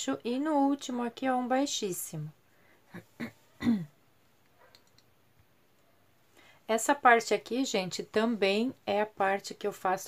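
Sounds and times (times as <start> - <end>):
woman clearing her throat: 2.9 - 4.0.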